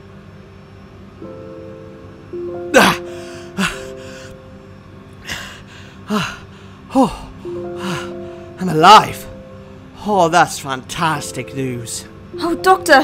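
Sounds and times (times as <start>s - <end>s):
held music chord: 0.8s - 13.0s
person gasping for breath: 2.8s - 4.4s, 5.2s - 8.5s.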